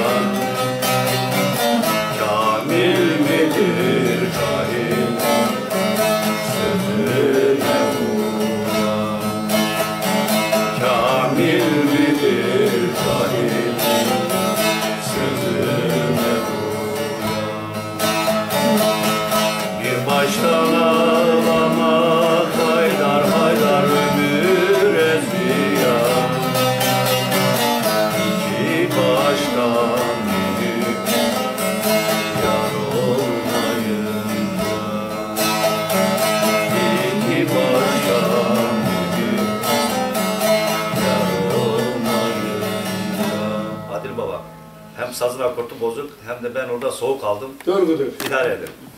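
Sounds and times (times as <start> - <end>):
man singing: 0.0 - 17.6, 18.5 - 44.4
long-necked lute plucked: 0.0 - 45.0
man talking: 43.9 - 44.4, 45.0 - 48.9.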